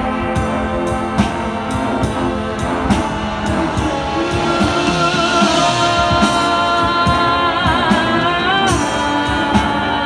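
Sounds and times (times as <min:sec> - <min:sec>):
percussion strikes: 0:00.0 - 0:09.1
marching band playing: 0:00.0 - 0:10.0.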